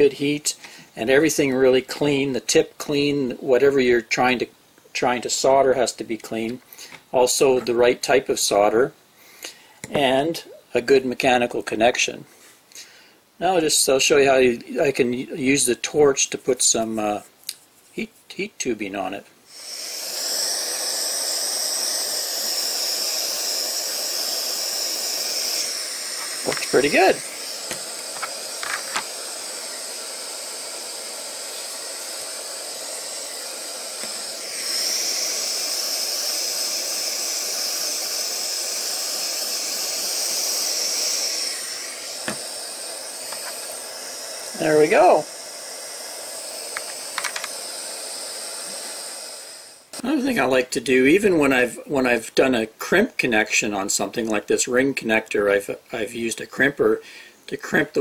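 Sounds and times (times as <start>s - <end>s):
gas torch hissing: 19.5s - 51.6s.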